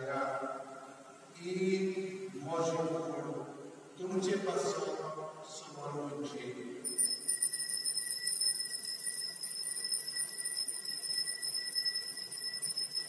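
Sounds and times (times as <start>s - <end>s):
altar bells jingling: 6.9s - 13.0s.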